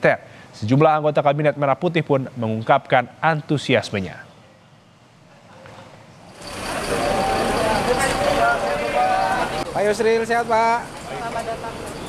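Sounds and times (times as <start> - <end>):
bus engines running: 4.9 - 12.0
crowd talking: 5.2 - 12.0.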